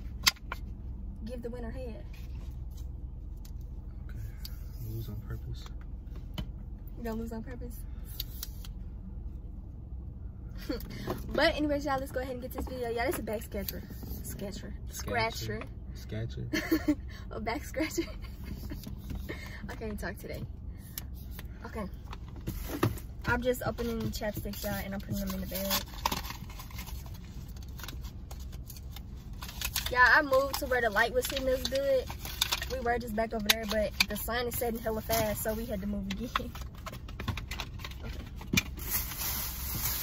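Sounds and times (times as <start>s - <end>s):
low steady rumble: 0.0s - 40.0s.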